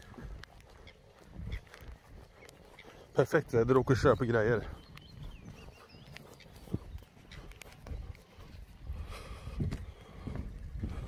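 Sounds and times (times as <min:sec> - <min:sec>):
footsteps on wet grass: 0:00.0 - 0:11.0.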